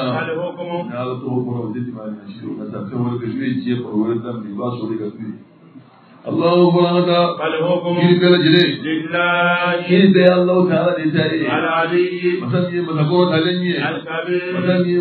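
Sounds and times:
man chanting: 0.0s - 5.3s, 6.2s - 15.0s.

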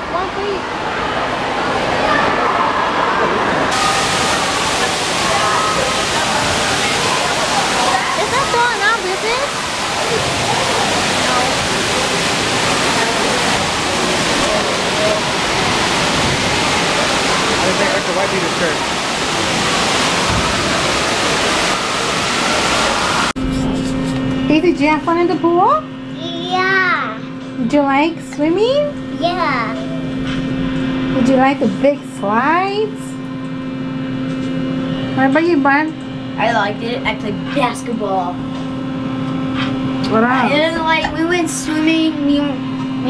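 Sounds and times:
children's voices: 1.9s - 11.6s
spraying and pouring water: 3.7s - 23.8s.

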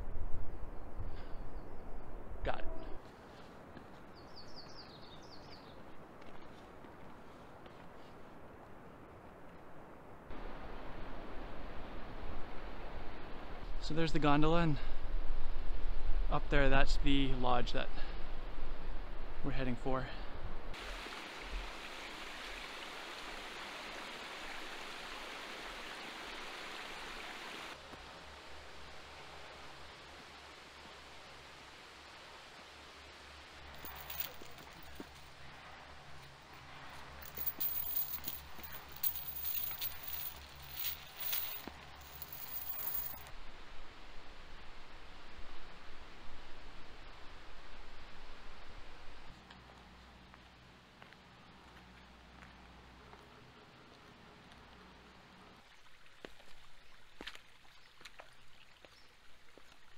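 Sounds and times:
creek trickling over rocks: 20.7s - 43.7s, 53.8s - 59.9s
footsteps crunching on gravel: 36.9s - 43.3s.

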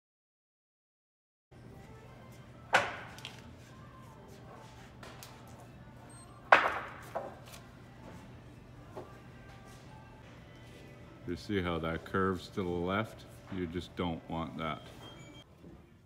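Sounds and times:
wooden boards knocking together: 6.5s - 7.3s.

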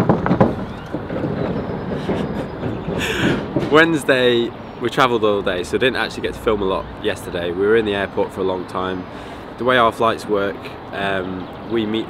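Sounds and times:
heavy road traffic passing: 0.0s - 12.0s.

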